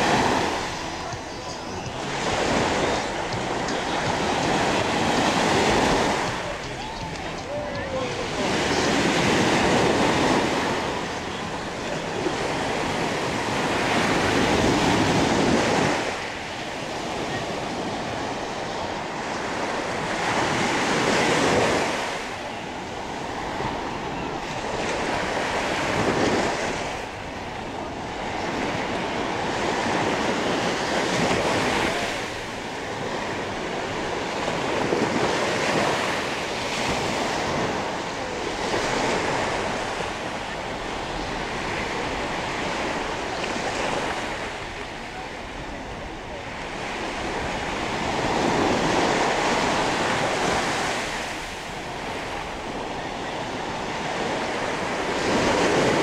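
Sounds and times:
waves washing on sand: 0.0s - 56.0s.

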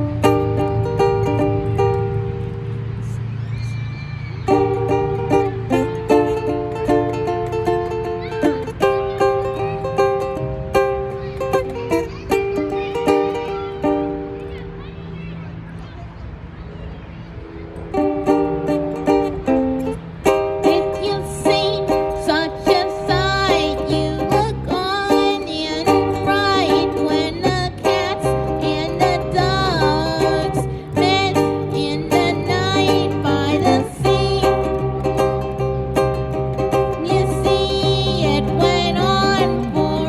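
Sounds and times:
strummed acoustic string instrument: 0.0s - 40.0s.

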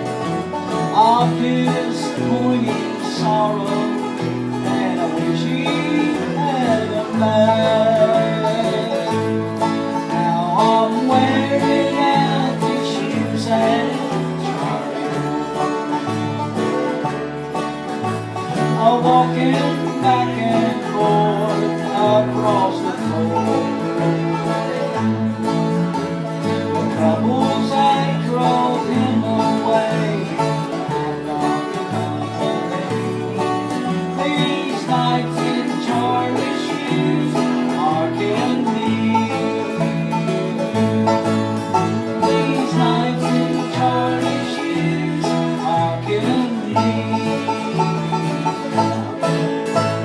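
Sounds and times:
acoustic guitars picked: 0.0s - 50.0s
banjo: 0.0s - 50.0s.

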